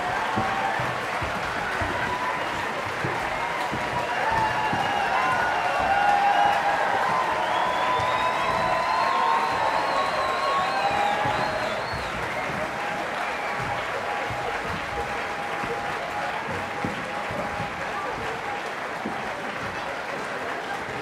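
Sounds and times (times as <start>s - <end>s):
audience applauding: 0.0s - 21.0s
cheers: 0.0s - 21.0s
long wavering whistle: 4.8s - 13.4s.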